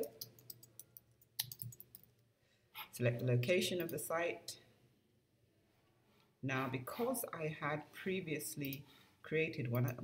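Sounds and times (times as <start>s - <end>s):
computer keyboard typing: 0.0s - 2.1s.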